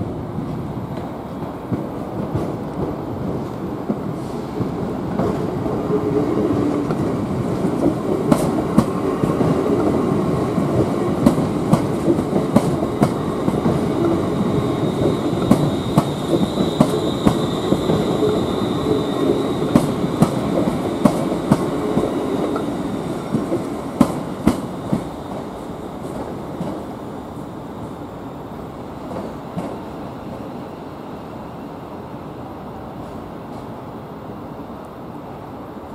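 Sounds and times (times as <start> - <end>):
train wheels clicking over rail joints: 6.4 - 26.9
high wheel squeal: 14.2 - 20.2.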